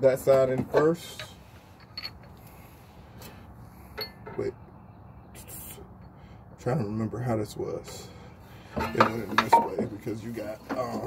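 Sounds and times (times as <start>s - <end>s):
metal parts clicking and clinking: 1.1s - 2.4s.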